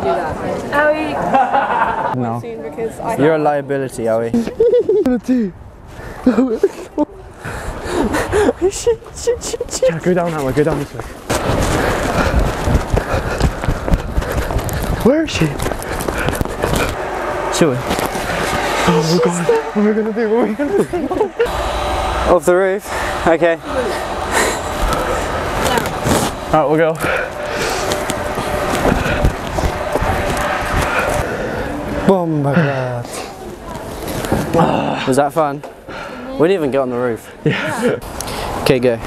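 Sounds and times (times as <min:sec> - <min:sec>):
footsteps on a roof: 0:10.3 - 0:17.0
wind on microphone: 0:11.0 - 0:22.3, 0:23.8 - 0:32.1.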